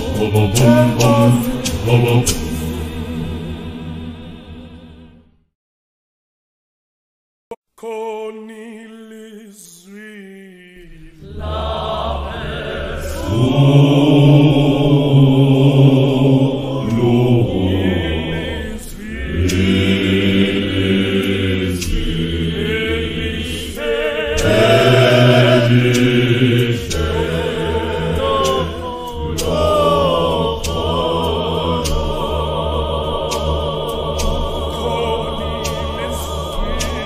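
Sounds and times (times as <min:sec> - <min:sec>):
choir singing a hymn: 0:00.0 - 0:05.2, 0:10.8 - 0:37.0.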